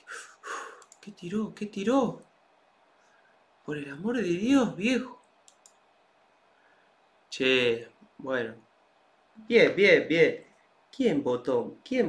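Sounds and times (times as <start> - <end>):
faint short clicks: 0.5 - 1.1, 5.2 - 5.9.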